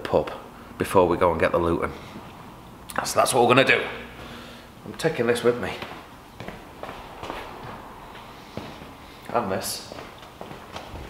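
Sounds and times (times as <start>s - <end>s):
footsteps on concrete: 4.2s - 11.0s.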